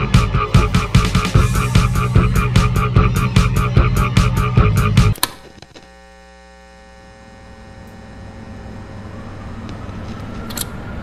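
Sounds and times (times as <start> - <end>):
music: 0.0 - 5.2
electrical mains hum: 0.0 - 11.0
click: 10.5 - 10.7.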